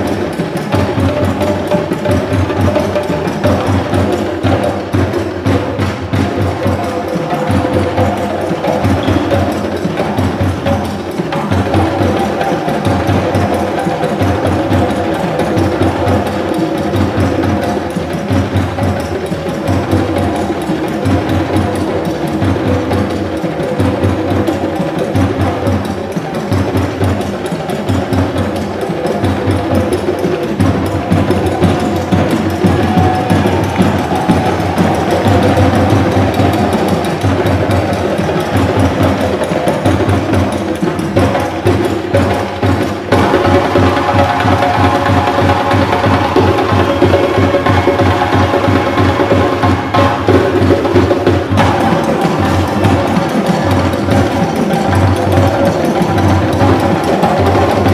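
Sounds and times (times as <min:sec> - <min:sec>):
djembe hand drums: 0:00.0 - 0:57.9.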